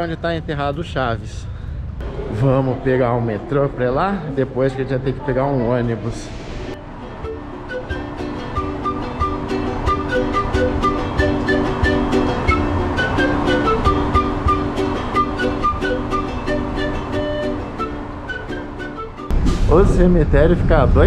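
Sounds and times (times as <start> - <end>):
melody of short notes: 6.9 - 19.3
small guitar strumming: 7.0 - 19.3.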